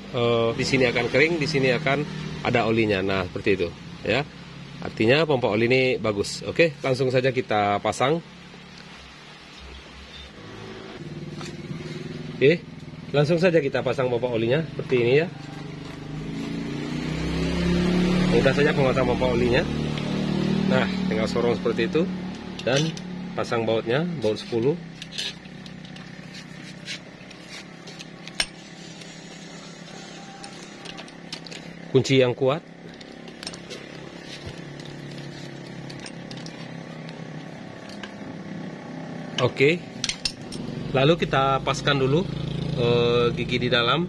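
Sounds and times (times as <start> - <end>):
vehicle engine running: 10.4 - 44.0.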